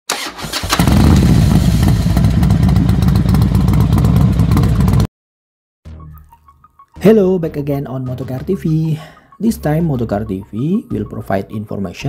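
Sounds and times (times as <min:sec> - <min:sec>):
motorcycle engine starting and running: 0:00.1 - 0:05.1.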